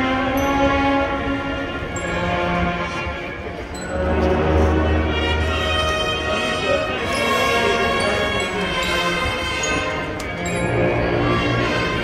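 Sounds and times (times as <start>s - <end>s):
brass band sustained chord: 0.0s - 12.0s.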